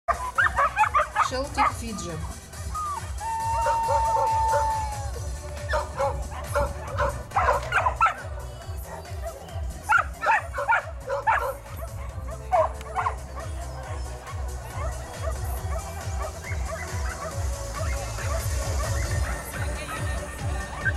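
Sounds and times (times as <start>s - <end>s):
dog barking sharply: 5.7s - 8.2s, 9.9s - 13.5s.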